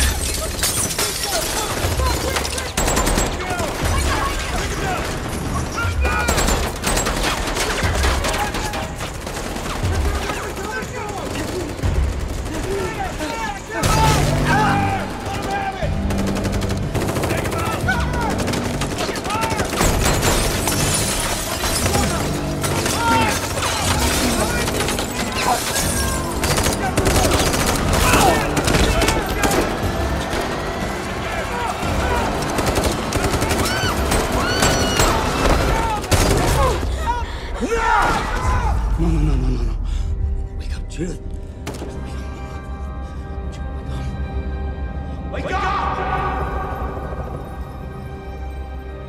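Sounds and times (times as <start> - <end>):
rapid automatic rifle fire: 1.5 - 14.4, 15.2 - 30.7, 31.8 - 36.8.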